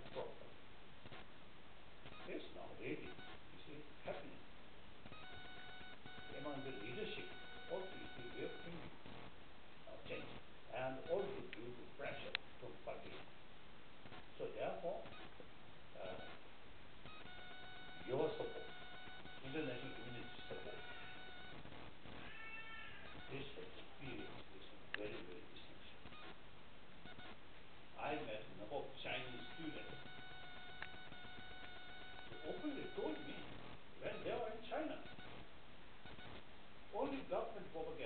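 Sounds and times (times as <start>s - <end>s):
man speaking: 0.0s - 0.5s, 2.2s - 4.4s, 6.2s - 8.9s, 9.9s - 13.2s, 16.0s - 16.3s, 18.0s - 18.8s, 19.4s - 21.1s, 23.2s - 26.0s, 28.0s - 30.1s, 32.3s - 35.1s, 36.9s - 38.0s
steady electronic tone: 5.1s - 8.8s, 17.1s - 21.9s, 29.2s - 34.4s
high-pitched meow-like cry: 22.2s - 23.3s.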